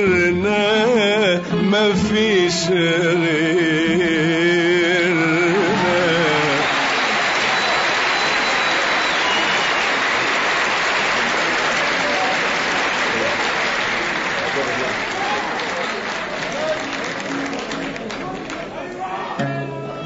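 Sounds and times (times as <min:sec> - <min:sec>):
audience applauding: 0:05.1 - 0:19.1.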